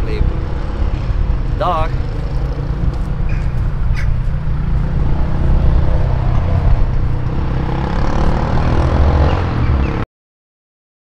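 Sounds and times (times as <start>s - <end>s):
wind buffeting microphone: 0.0s - 9.9s.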